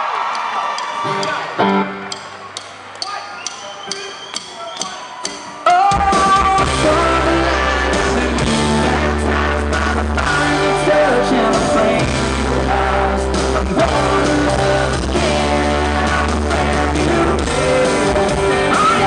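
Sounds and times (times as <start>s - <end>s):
drums: 0.2s - 19.0s
electric and acoustic guitars: 1.0s - 2.5s, 5.8s - 19.0s
melodic lead guitar lines: 1.1s - 2.5s, 6.0s - 19.0s
bass: 6.0s - 19.0s.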